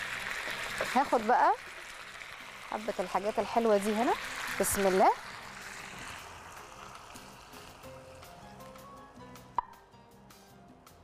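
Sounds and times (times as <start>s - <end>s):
frying pan sizzle: 0.0s - 9.6s
soft background music: 0.0s - 11.0s.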